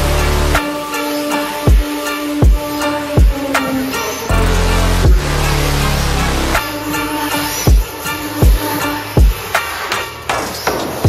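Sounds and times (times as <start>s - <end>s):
electronic music with heavy beat: 0.0s - 11.0s
deep bass thumps: 4.9s - 5.8s, 7.7s - 8.6s.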